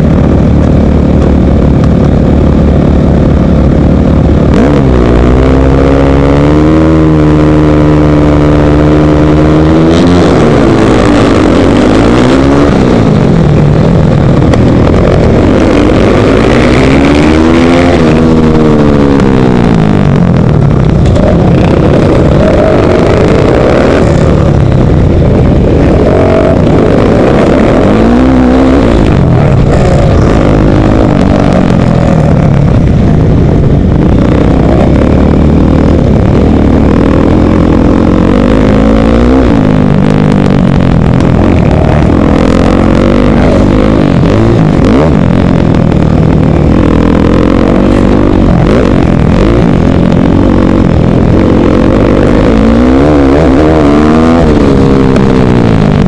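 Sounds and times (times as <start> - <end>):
motorcycle engine revving: 0.0 - 56.0
other motorcycle engines: 0.0 - 56.0.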